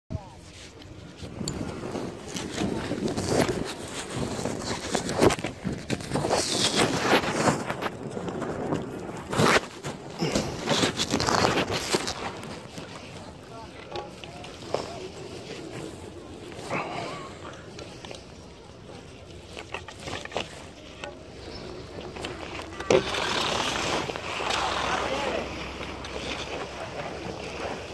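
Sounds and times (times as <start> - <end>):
wind buffeting microphone: 0.9 - 13.8.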